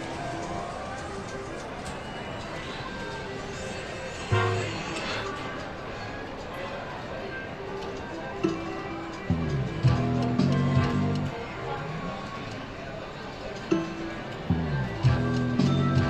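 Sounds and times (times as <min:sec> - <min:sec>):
background chatter: 0:00.0 - 0:16.0.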